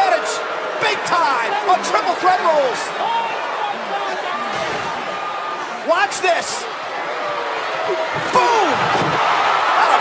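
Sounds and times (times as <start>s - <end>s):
arena crowd noise: 0.0s - 10.0s
people shouting: 7.2s - 10.0s
thud: 8.2s - 9.2s.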